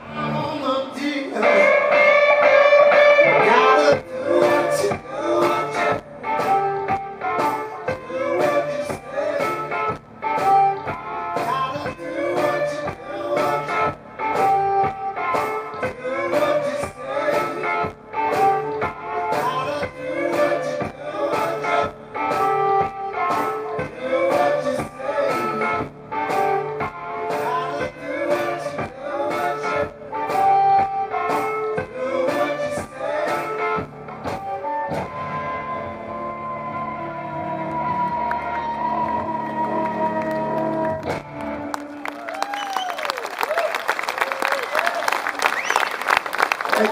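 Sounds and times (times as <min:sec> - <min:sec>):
electric guitar: 0:00.0 - 0:46.9.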